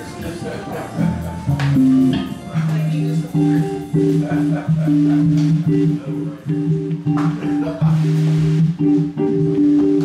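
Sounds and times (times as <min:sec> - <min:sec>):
electric bass notes: 0:00.0 - 0:10.0
guitar notes: 0:00.0 - 0:10.0
cymbal taps: 0:05.2 - 0:05.8, 0:06.8 - 0:07.6.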